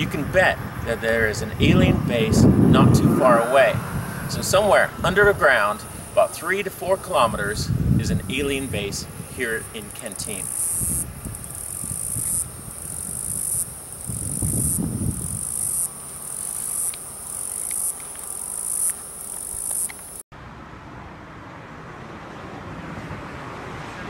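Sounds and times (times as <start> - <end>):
low rumbles: 0.0 - 6.2
rushing outdoor noise: 0.0 - 24.0
insect chorus shrilling: 8.5 - 20.2.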